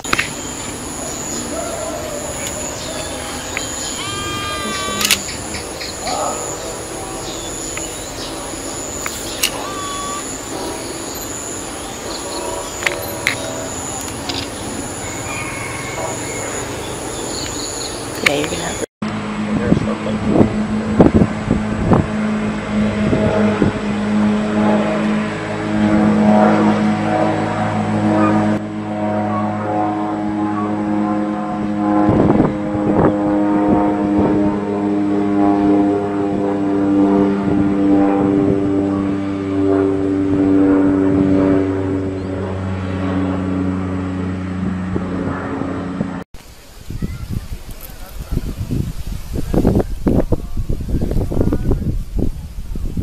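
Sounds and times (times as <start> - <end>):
motor idling hum: 0.0 - 29.7.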